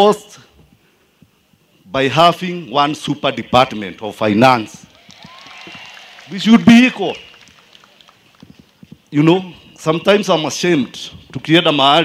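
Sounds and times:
man speaking into microphone: 0.0 - 0.5, 1.8 - 4.9, 6.3 - 7.3, 9.1 - 12.0.

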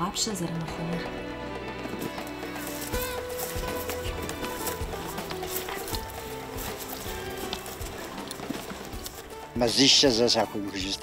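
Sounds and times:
background music with held notes: 0.0 - 11.0
horse hoof steps: 0.0 - 11.0
jingling tack: 0.9 - 11.0.

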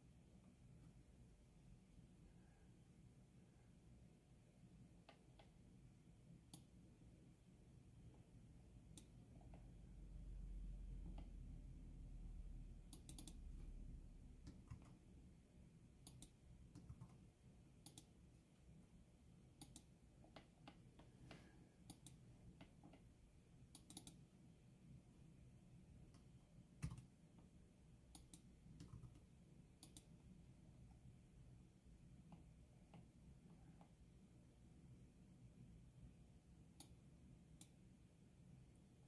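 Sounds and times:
mouse and keyboard clicks: 12.9 - 13.6, 16.0 - 17.2, 17.8 - 18.2, 19.6 - 23.1, 23.7 - 24.2, 26.1 - 27.1, 29.8 - 30.2.

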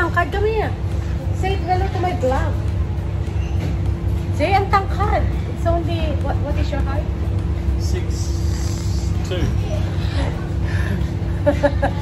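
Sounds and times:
ventilation fan rumble and hum: 0.0 - 12.0.

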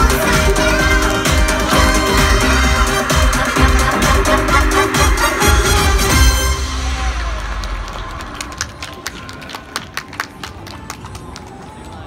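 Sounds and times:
pop show music: 0.0 - 8.7
audience clapping: 6.7 - 12.0.

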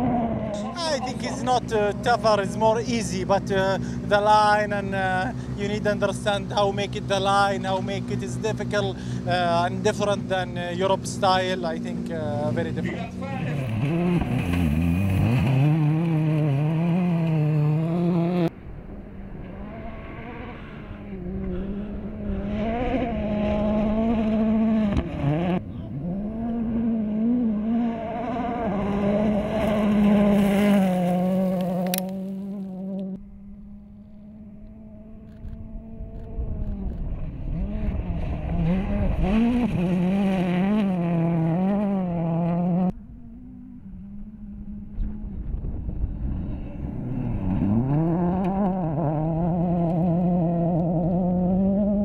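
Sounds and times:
rally car engine revving: 0.0 - 52.0.

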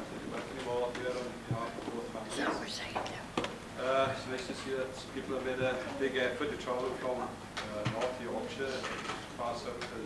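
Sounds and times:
indistinct talk of people: 0.2 - 10.0.

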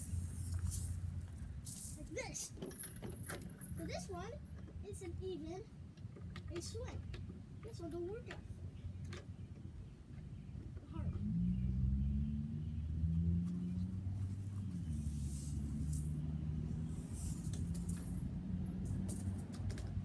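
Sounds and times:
scraping or brushing noises: 0.0 - 2.6, 13.4 - 19.6
low engine hum: 10.4 - 20.0.

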